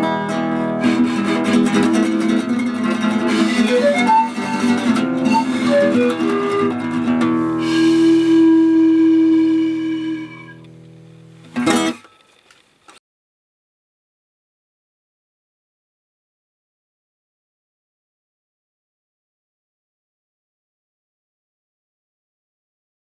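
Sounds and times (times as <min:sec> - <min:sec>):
classical guitar strumming: 0:00.0 - 0:12.2
pan flute melody: 0:00.7 - 0:10.7.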